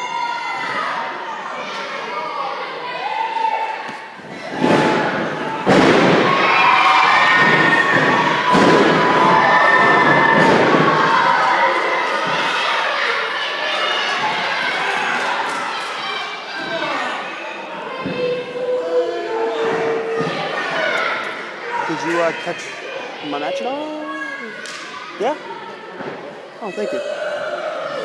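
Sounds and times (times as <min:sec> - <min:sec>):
crowd shouting and cheering: 0:00.0 - 0:28.0
bodies thudding on wrestling ring: 0:04.5 - 0:06.5, 0:07.3 - 0:10.9.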